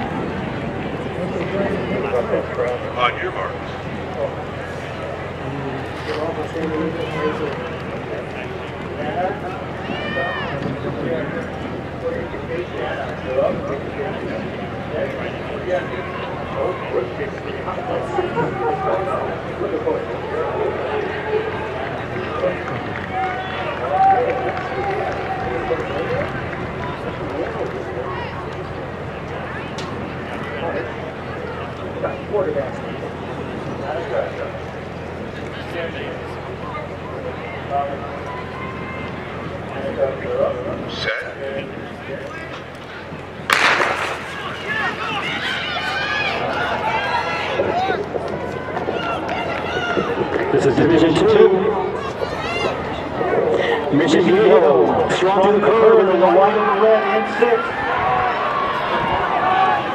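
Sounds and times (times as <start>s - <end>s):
crowd chattering: 0.0s - 59.9s
spectators shouting and cheering: 0.0s - 59.9s
starter's pistol shot: 43.5s - 44.3s.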